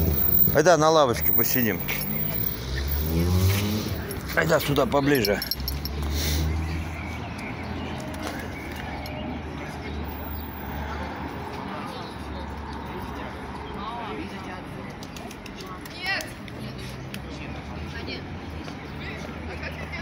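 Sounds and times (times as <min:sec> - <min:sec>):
distant traffic hum: 0:00.0 - 0:20.0.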